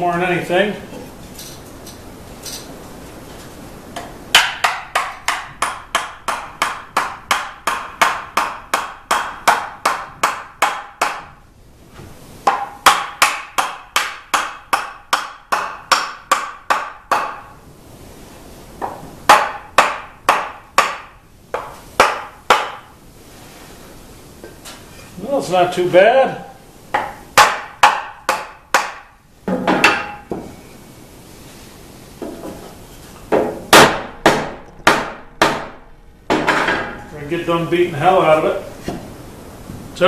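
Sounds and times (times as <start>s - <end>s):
wooden mallet tapping wood: 4.0s - 11.4s, 12.4s - 17.5s, 18.8s - 22.9s, 26.9s - 30.5s.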